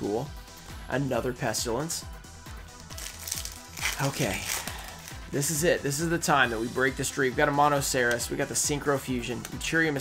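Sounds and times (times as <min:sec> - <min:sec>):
background music with steady beat: 0:00.0 - 0:10.0
foil wrapper tearing: 0:02.9 - 0:05.2.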